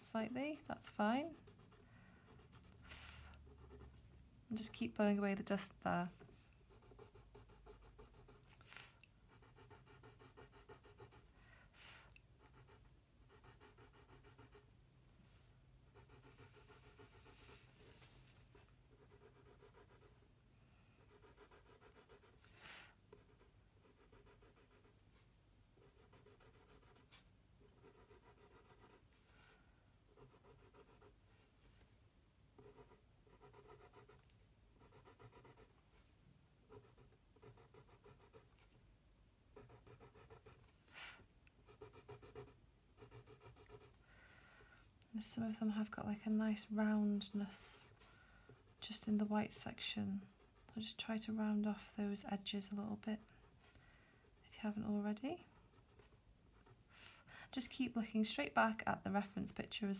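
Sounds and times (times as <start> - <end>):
pencil scratching on paper: 0.8 - 4.1, 6.6 - 14.7, 15.8 - 20.2, 21.0 - 25.0, 25.8 - 29.2, 30.1 - 31.2, 32.6 - 35.8, 36.7 - 38.6, 39.6 - 44.0, 55.4 - 56.9.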